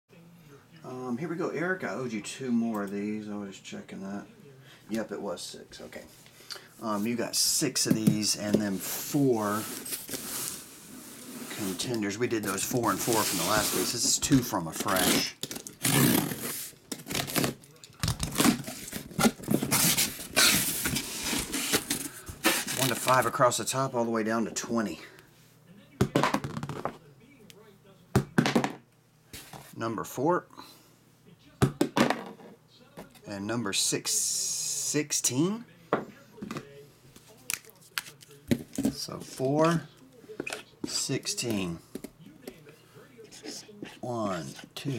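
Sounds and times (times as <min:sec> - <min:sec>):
packing tape ripping: 0:14.8 - 0:23.3.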